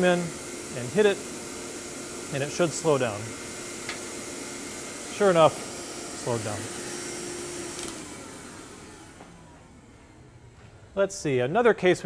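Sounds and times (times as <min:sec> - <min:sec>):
blower winding down: 0:00.0 - 0:10.7.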